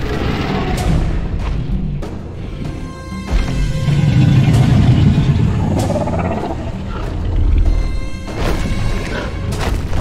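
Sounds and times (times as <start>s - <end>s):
orchestral score: 0.0s - 10.0s.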